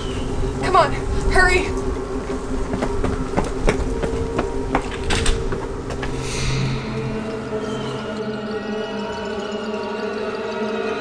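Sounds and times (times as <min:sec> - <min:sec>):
low sustained drone: 0:04.5 - 0:10.8
falling whoosh: 0:06.0 - 0:08.5.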